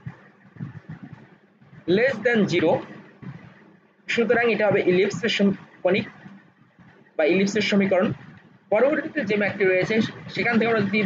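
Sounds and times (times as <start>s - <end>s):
person speaking: 0.0s - 6.4s, 7.2s - 11.0s.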